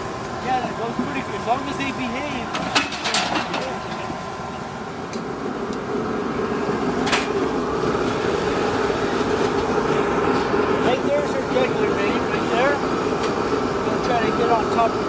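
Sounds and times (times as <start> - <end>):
group of people talking: 0.4 - 5.4, 9.1 - 15.0.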